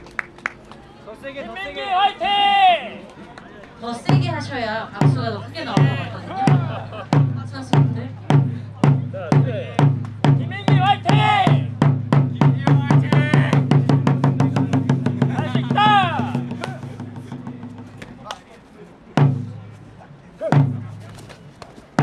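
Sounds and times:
drums beating a steady rhythm: 4.0 - 18.0, 19.2 - 19.7, 20.4 - 21.0
person shouting: 10.5 - 11.6, 15.4 - 16.4.

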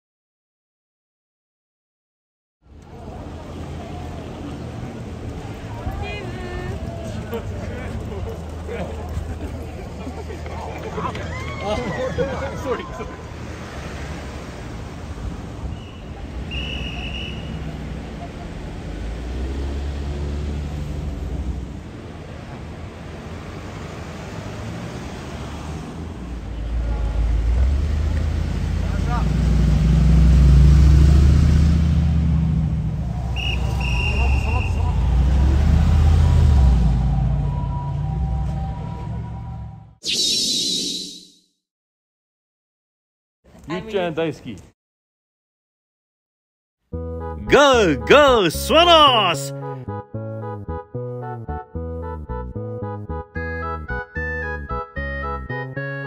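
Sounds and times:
cars driving past: 2.7 - 40.0
short high-pitched beeps: 40.0 - 41.4.

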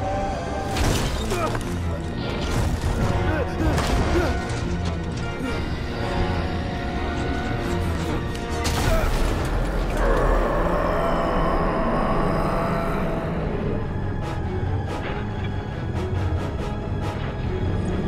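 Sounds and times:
dark tense orchestral music: 0.0 - 18.0.

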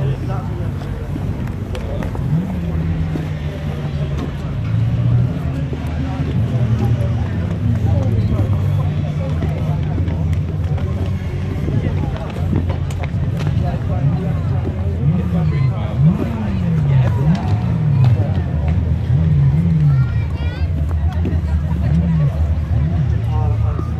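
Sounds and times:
racing car engines: 0.0 - 23.9
spectators chatting: 0.0 - 23.9.

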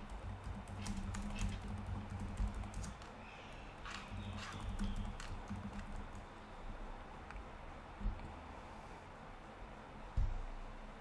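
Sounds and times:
computer keyboard typing: 0.0 - 3.2, 3.8 - 6.3.

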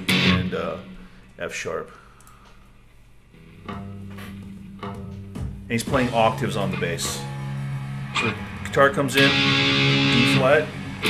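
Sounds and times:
low bass notes: 0.0 - 1.0, 3.4 - 11.0.

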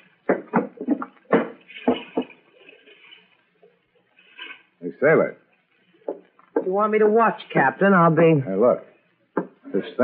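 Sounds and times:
knocks and clunks: 0.2 - 2.4.

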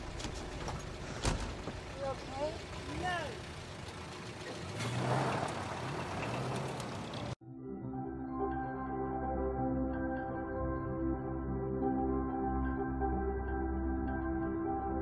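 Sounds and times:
car engine pulling away: 0.0 - 7.4
car door shutting: 0.1 - 1.8
soft ambient music: 7.4 - 15.0.

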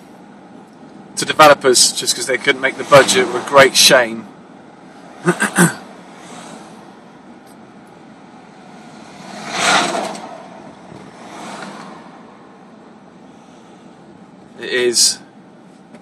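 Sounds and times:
road and tyre noise in car: 0.0 - 16.0
car passing whoosh: 5.9 - 7.1, 8.4 - 12.8.

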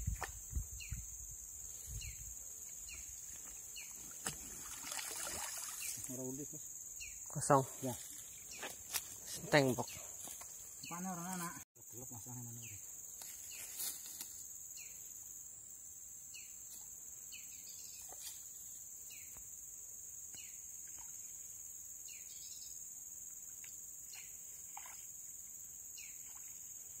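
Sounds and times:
insects droning: 0.0 - 27.0.

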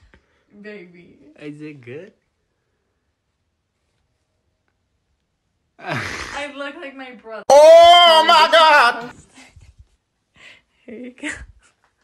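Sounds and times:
person sighing breathily: 5.8 - 6.4.

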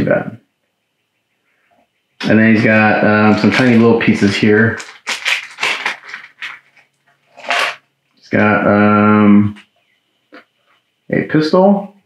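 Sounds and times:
plastic bag rustling: 2.2 - 7.8
plastic bag crinkle: 2.3 - 7.8.

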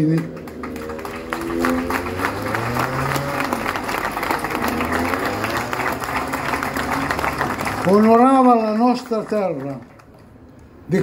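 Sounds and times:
audience applauding: 0.0 - 10.3.

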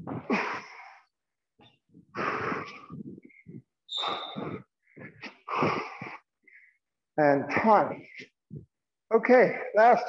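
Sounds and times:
person breathing hard: 0.0 - 1.2, 2.1 - 6.9.

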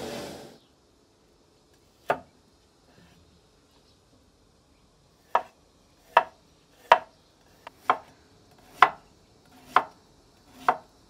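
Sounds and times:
knife chopping on wooden board: 2.0 - 2.3, 5.3 - 10.9.

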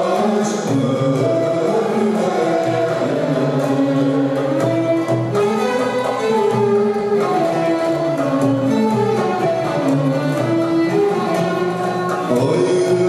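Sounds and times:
man singing into a microphone: 0.0 - 4.6, 12.3 - 13.0
plucked string instruments: 0.0 - 13.0
violin: 0.0 - 13.0.

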